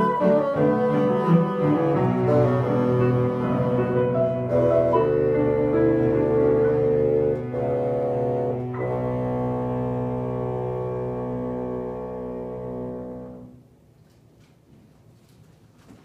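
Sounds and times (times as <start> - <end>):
cello bassoon and piano chords: 0.0 - 13.6.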